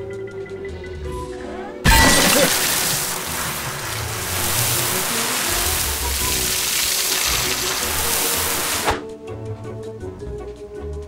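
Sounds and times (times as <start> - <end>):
background music: 0.0 - 11.0
drinking fountain water spray hissing: 2.1 - 9.0.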